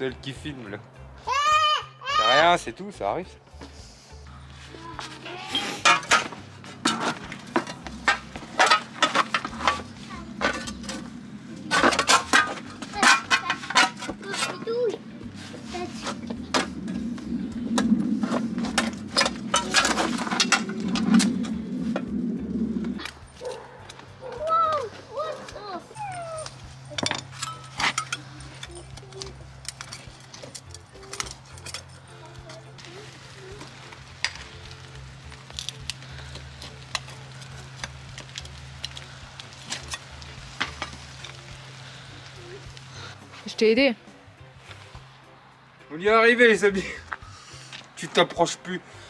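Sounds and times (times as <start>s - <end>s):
metal scraping on concrete: 3.6s - 45.1s.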